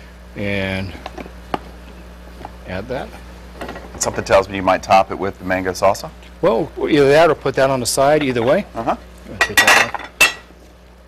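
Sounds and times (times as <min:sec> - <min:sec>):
utensils and dishes clattering: 0:09.4 - 0:10.5.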